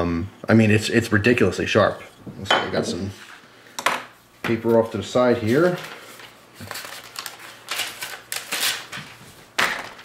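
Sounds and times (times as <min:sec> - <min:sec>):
paper rustling and crinkling: 0:04.7 - 0:10.0.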